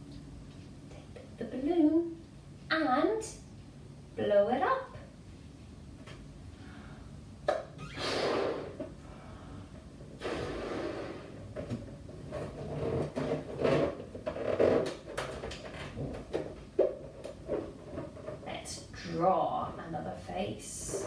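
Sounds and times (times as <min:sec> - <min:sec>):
balloon snap: 0:07.5 - 0:08.8
balloon rubber squeaking: 0:07.8 - 0:08.8, 0:10.2 - 0:11.4, 0:12.3 - 0:15.3
breath blown into balloon: 0:07.9 - 0:08.8, 0:10.2 - 0:11.4.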